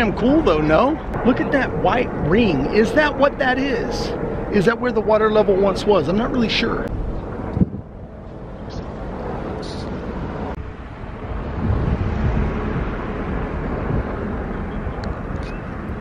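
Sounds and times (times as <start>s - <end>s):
wind rushing across microphone: 0.0s - 16.0s.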